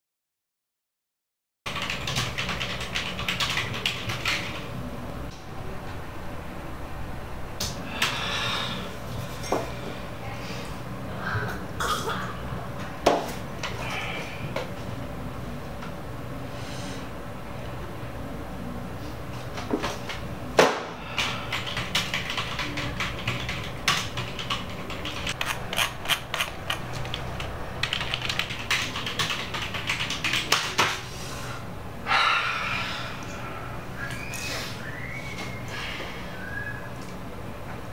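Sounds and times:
typing on a keyboard: 1.7 - 4.6, 21.2 - 31.0
low steady hum: 1.7 - 37.9.

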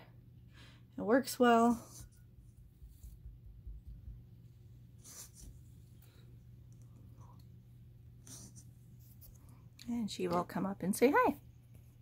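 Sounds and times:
steady low hum: 0.0 - 12.0
faint brushing sounds: 1.0 - 12.0.

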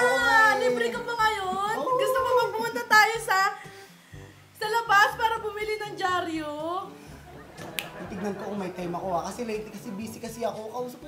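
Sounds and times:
finger snap: 7.6 - 8.0.

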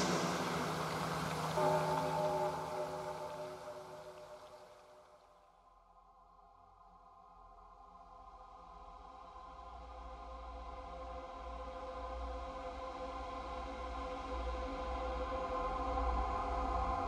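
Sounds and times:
low bass drone: 0.0 - 4.7
synthesizer pad chord: 0.0 - 4.8.

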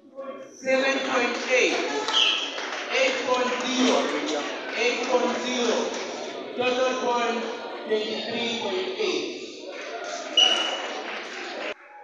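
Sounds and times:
background chatter: 0.0 - 12.0
whistle blast: 10.4 - 10.8.

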